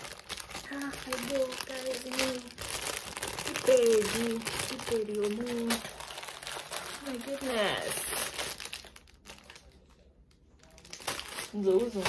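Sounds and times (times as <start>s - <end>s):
plastic bag crinkling: 0.0s - 12.0s
woman speaking: 0.7s - 2.6s, 3.4s - 5.9s, 7.0s - 8.3s, 11.5s - 12.0s.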